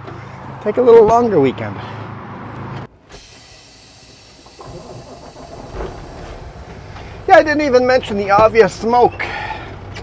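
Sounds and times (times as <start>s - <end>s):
diesel truck engine idling: 3.0s - 10.0s.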